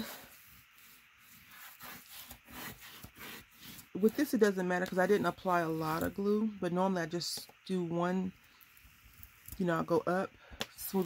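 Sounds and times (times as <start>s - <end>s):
bone folder scraping paper: 0.0s - 6.1s.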